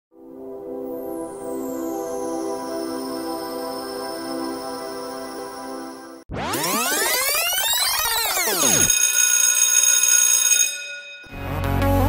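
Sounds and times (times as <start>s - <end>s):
held high chord: 0.2s - 7.2s
descending electronic tone sweep: 2.0s - 8.9s
music with deep bass: 11.3s - 12.0s.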